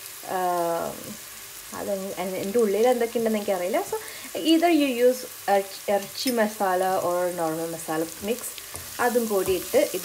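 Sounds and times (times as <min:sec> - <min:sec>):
onions sizzling in a pot: 0:00.0 - 0:10.0
person talking: 0:01.8 - 0:10.0.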